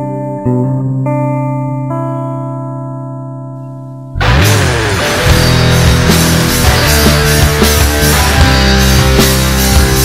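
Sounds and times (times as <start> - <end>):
guitar chord ringing: 0.0 - 10.0.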